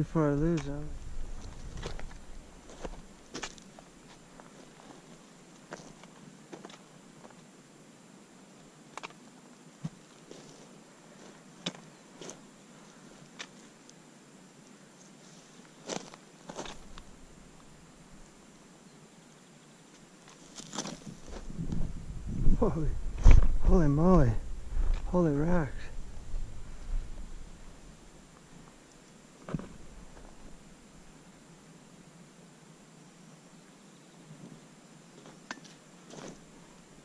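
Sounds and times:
footsteps over loose rock: 0:00.5 - 0:05.0, 0:15.8 - 0:17.1, 0:20.2 - 0:22.0, 0:29.4 - 0:30.5.

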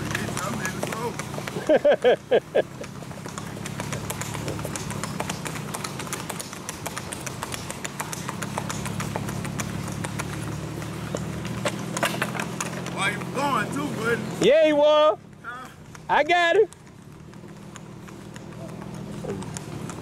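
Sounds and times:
hooves clip-clopping on asphalt: 0:00.0 - 0:20.0
vehicle engine hum: 0:00.0 - 0:20.0.

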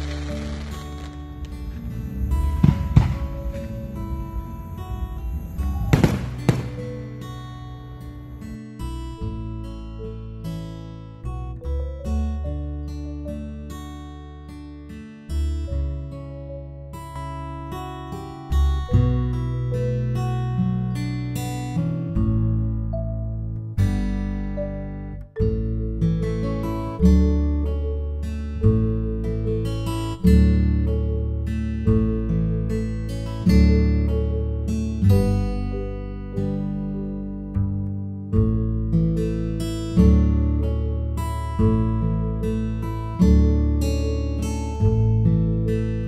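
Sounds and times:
fireworks bangs: 0:00.0 - 0:07.2
strummed acoustic guitar music: 0:00.0 - 0:46.0.

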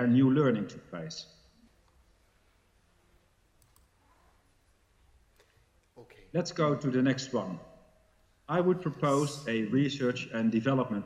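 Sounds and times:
faint clicks: 0:03.6 - 0:04.1.

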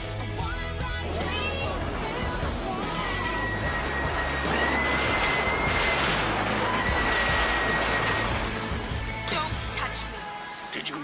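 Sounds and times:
film music: 0:00.0 - 0:11.0
high held shriek: 0:01.1 - 0:10.2.

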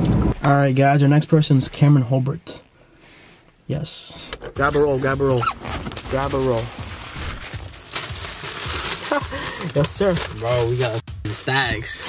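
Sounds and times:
plastic wrap crinkling: 0:04.6 - 0:11.0.

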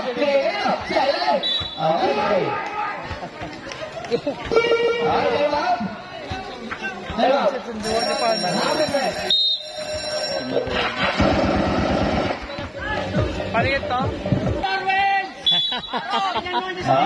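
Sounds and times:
spectators chattering: 0:00.0 - 0:17.0
referee whistle blasts: 0:01.4 - 0:02.0, 0:09.2 - 0:09.9, 0:15.4 - 0:16.0.

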